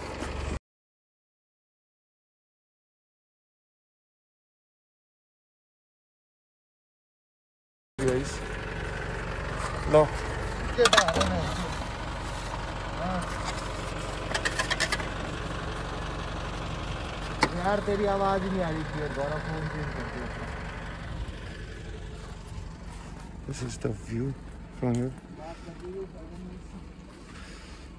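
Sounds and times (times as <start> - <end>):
pickup engine idling: 8.0 - 27.9.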